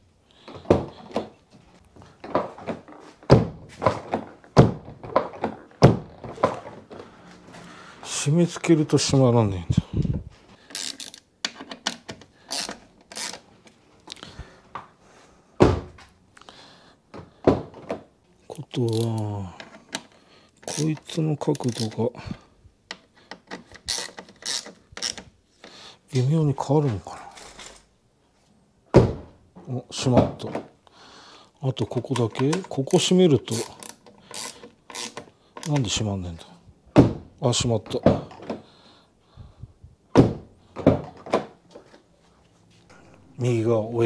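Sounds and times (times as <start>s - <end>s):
screwdriver clicking and scraping: 10.7s - 13.4s, 18.9s - 22.0s, 22.9s - 25.7s, 33.5s - 35.8s.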